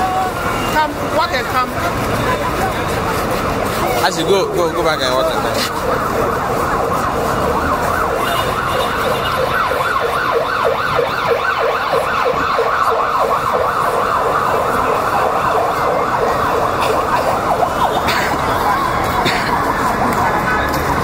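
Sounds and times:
electronic siren yelping: 4.0 - 20.6.

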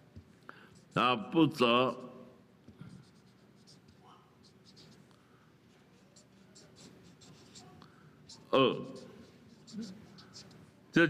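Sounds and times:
marker scratching on paper: 0.2 - 11.0.

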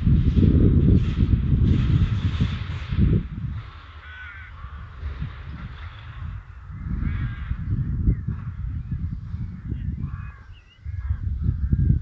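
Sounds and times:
low uneven rumble: 0.0 - 12.0
harsh bird calls: 4.0 - 5.7, 6.3 - 12.0.

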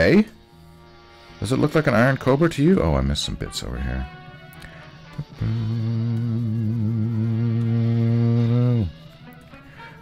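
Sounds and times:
man humming long low note: 4.6 - 9.1.

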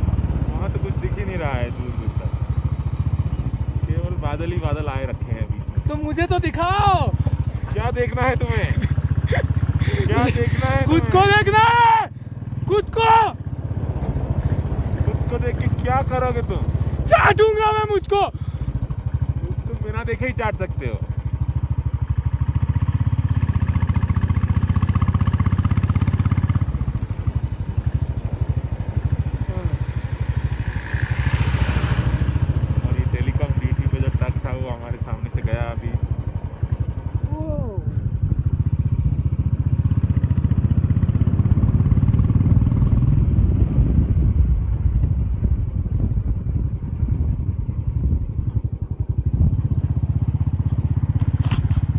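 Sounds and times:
motorcycle engine rumbling: 0.0 - 51.9
wind noise on microphone: 41.2 - 50.2.

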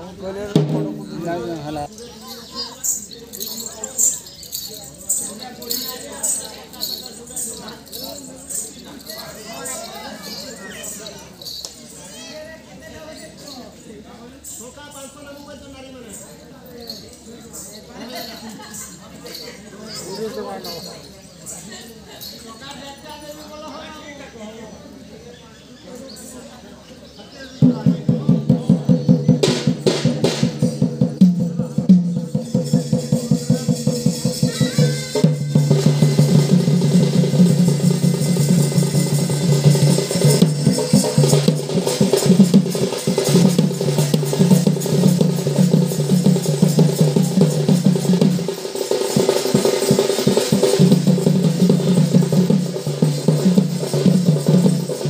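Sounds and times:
fast barrel drumming: 27.6 - 55.0.

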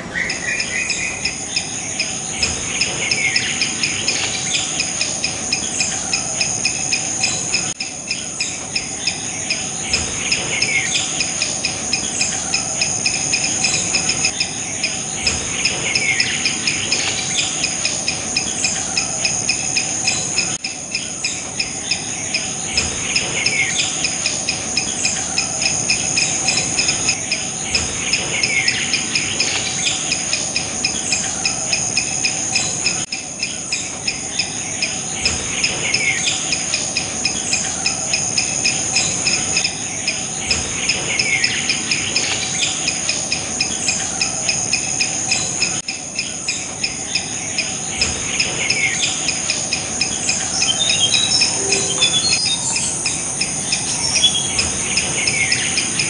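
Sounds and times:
insect chorus trilling: 0.0 - 56.0.

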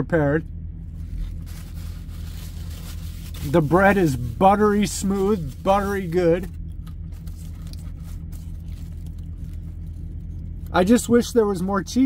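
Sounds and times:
steady low hum: 0.0 - 12.0
paper wrapper crinkling: 0.9 - 10.9.

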